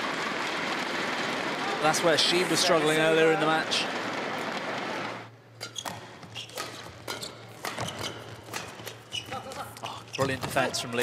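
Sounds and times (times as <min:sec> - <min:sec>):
shoe squeaks: 0:05.6 - 0:08.4, 0:09.0 - 0:10.7
rackets hitting shuttlecock: 0:05.6 - 0:09.6.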